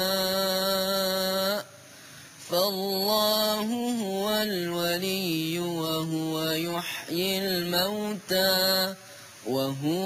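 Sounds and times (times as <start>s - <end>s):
man chanting melodically: 0.0s - 1.8s, 2.5s - 10.0s.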